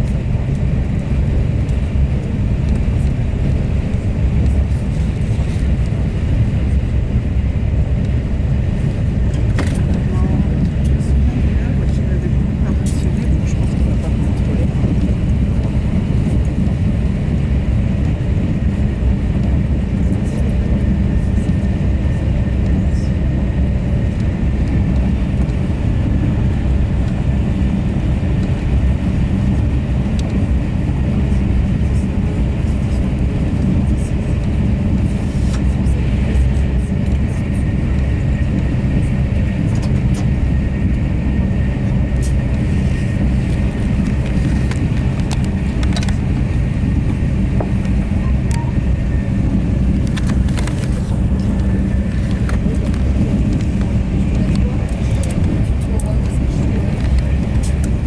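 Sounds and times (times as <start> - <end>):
train interior rumble: 0.0 - 58.0
faint high whine: 48.1 - 49.4.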